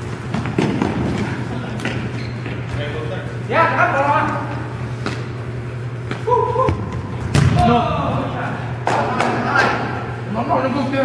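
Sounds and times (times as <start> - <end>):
ball thump on gym floor: 6.1 - 7.8.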